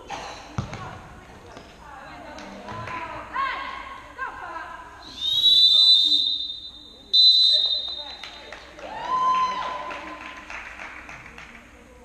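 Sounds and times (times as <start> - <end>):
referee's whistle blasts: 5.0 - 8.5.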